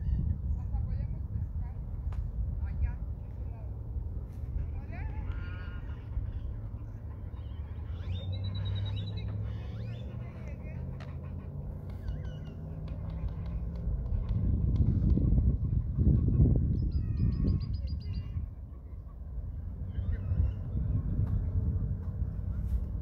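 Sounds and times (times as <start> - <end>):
low outdoor rumble: 0.0 - 23.0
small birds chirping: 4.6 - 23.0.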